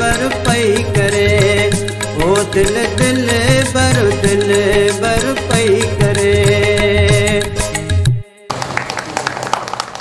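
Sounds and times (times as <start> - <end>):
small audience clapping: 8.5 - 10.0.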